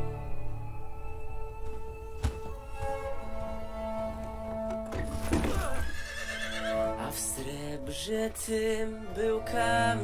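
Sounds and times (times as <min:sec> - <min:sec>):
sustained music drone: 0:00.0 - 0:05.0.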